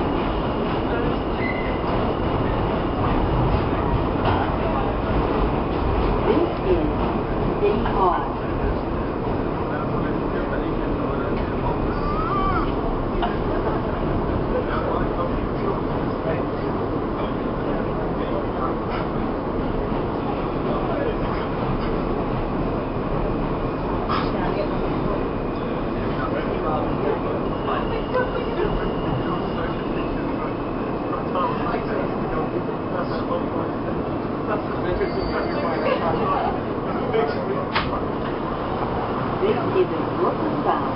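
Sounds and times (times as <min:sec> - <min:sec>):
subway car rumbling: 0:00.0 - 0:40.9
high-pitched brake squeal: 0:01.4 - 0:01.9, 0:34.9 - 0:36.1.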